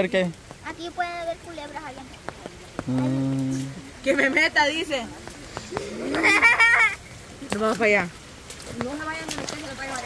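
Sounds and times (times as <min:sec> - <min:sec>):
raindrops tapping on microphone: 0:00.0 - 0:10.0.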